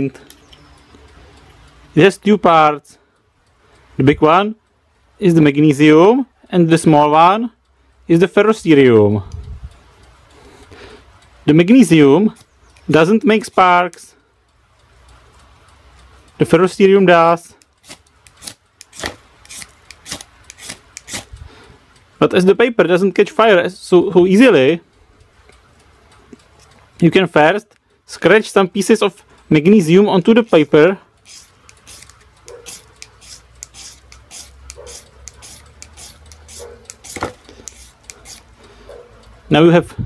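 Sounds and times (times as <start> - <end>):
striker scraping ferro rod: 17.8 - 21.4, 30.4 - 38.6.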